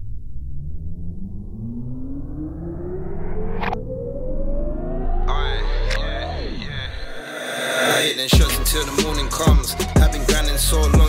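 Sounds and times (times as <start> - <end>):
deep bass rumble: 0.0 - 7.2
rising synth sweep: 0.0 - 8.9.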